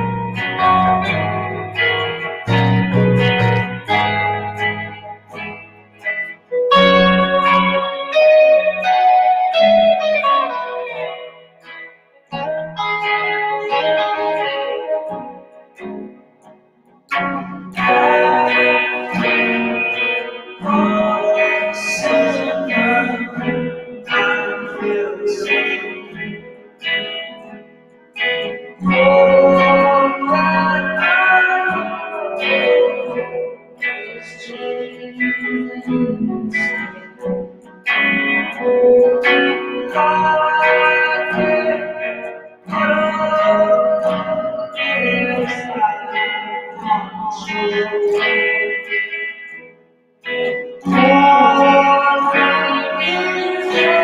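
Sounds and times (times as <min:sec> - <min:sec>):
electric guitars with effects: 0:00.0 - 0:54.0
keyboard: 0:00.0 - 0:54.0.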